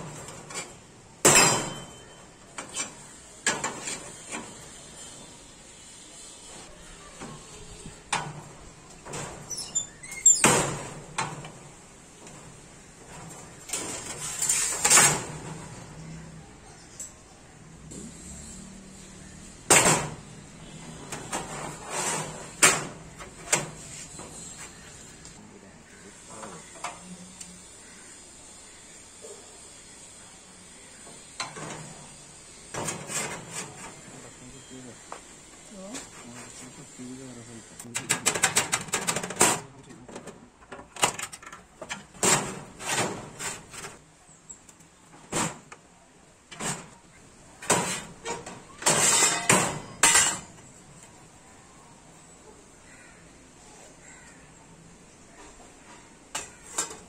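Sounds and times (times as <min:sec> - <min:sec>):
metal clanks and knocks: 0:37.9 - 0:43.7, 0:47.6 - 0:50.6.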